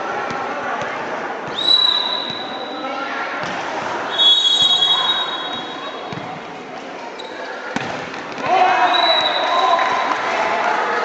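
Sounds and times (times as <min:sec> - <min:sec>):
whistle tone: 0:01.6 - 0:02.7, 0:04.1 - 0:06.0.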